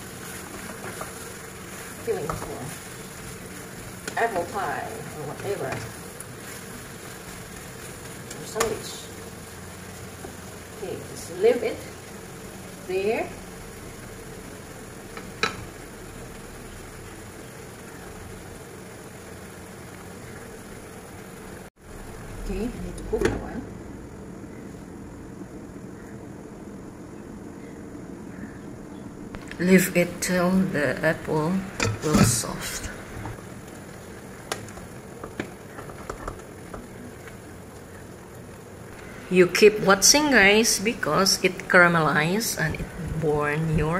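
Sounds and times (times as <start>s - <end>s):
apples sizzling in a frying pan: 0.0s - 43.9s
faint hum: 0.0s - 43.9s.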